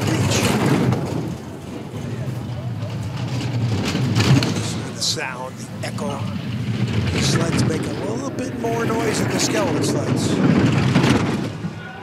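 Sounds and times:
bobsled runners rumbling on ice: 0:00.0 - 0:11.9.

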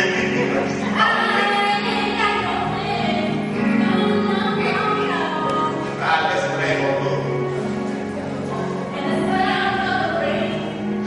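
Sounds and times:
people singing: 0:00.0 - 0:07.2, 0:08.7 - 0:11.0
musical accompaniment: 0:00.0 - 0:11.0.

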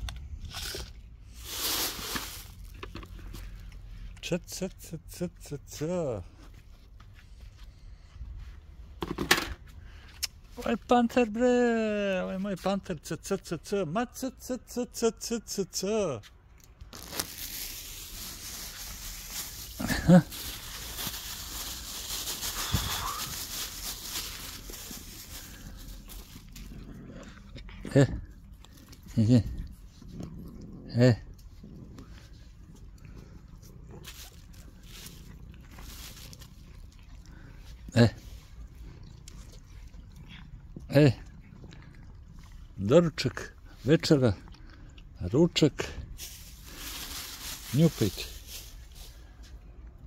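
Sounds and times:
plastic bag crinkling: 0:00.5 - 0:03.0, 0:16.8 - 0:26.8, 0:34.0 - 0:36.7, 0:46.2 - 0:49.3
man's low calls: 0:04.2 - 0:06.4
short loud cry: 0:22.6 - 0:23.4.

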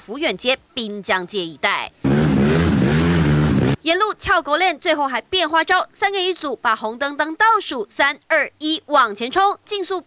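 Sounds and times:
motorcycle engines revving: 0:02.0 - 0:03.8.

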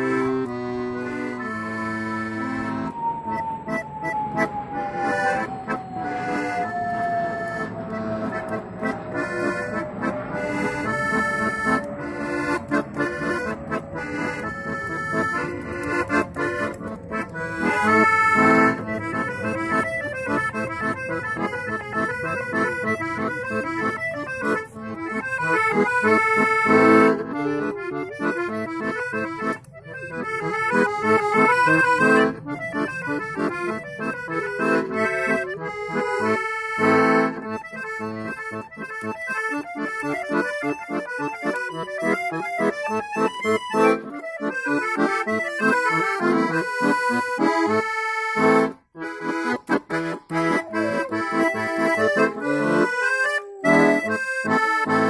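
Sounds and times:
piano accordion folk tune: 0:00.0 - 0:55.0.

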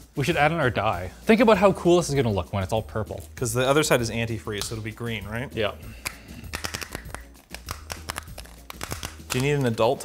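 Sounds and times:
plastic bottle cap clicking: 0:06.0 - 0:09.9.

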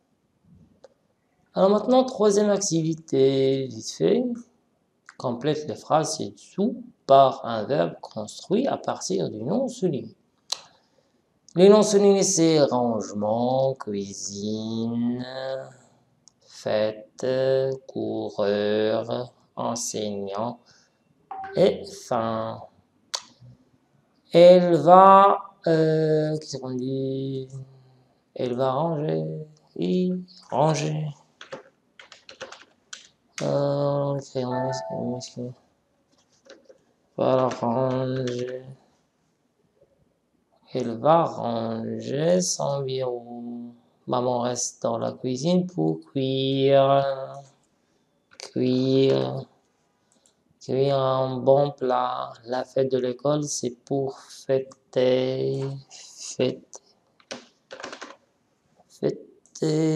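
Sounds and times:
computer keyboard typing: 0:31.4 - 0:33.5, 0:57.2 - 0:58.2
keyboard key clicks: 0:57.2 - 0:58.2.

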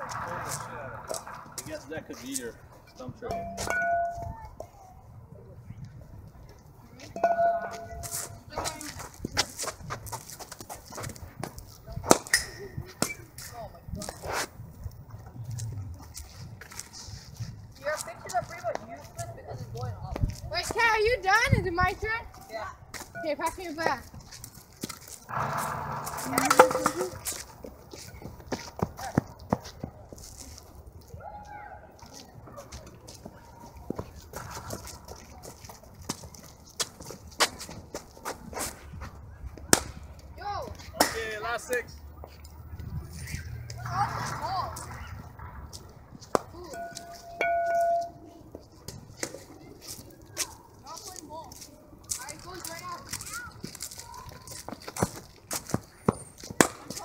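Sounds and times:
indistinct voices talking: 0:00.0 - 0:09.7, 0:25.2 - 0:30.1, 0:39.5 - 0:54.5.

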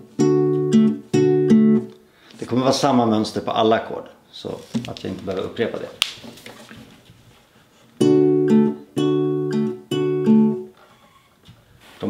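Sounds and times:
acoustic guitar plucked strings: 0:00.0 - 0:02.0, 0:08.0 - 0:11.2.

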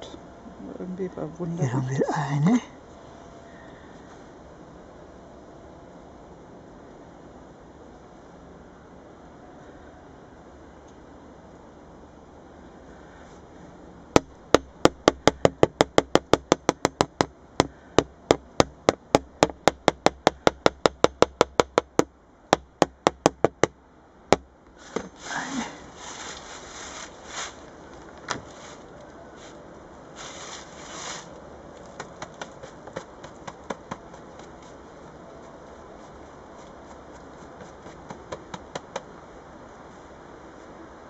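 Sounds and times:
plastic board rustling and scraping: 0:24.8 - 0:29.6.

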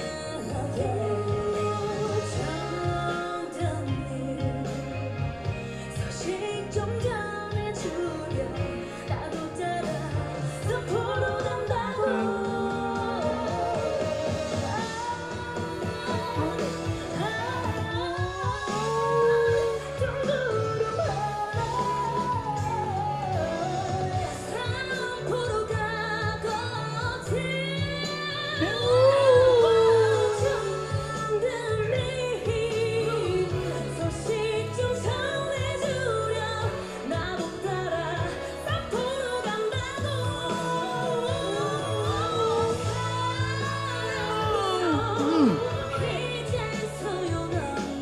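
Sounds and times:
girl group singing with band: 0:00.0 - 0:48.0.

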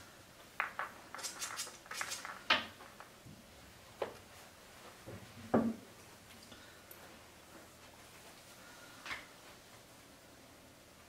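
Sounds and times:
pool balls clicking: 0:00.4 - 0:03.3.

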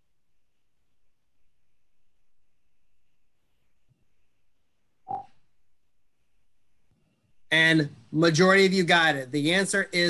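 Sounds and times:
notification blip: 0:05.1 - 0:05.3.

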